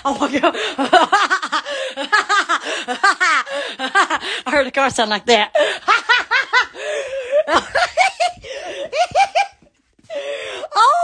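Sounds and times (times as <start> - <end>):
woman laughing hard: 0.0 - 4.4, 5.6 - 10.3.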